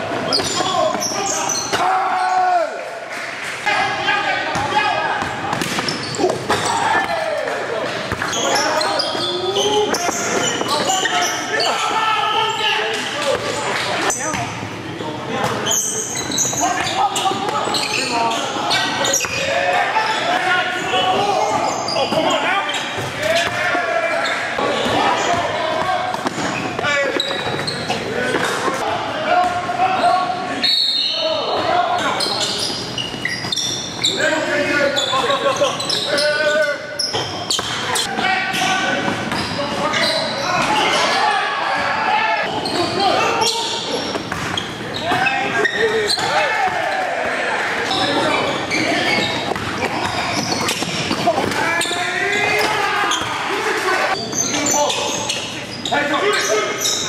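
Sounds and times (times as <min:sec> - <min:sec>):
indistinct shouts and talk: 0:00.0 - 0:57.0.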